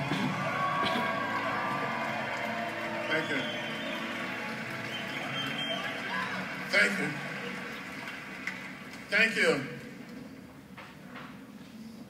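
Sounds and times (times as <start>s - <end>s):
audience applause through speakers: 0.0s - 10.1s.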